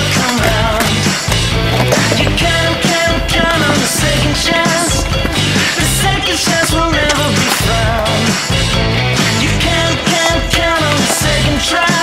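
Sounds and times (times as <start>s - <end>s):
rock music with steady beat: 0.0s - 12.0s
skateboard rolling on concrete: 0.0s - 12.0s.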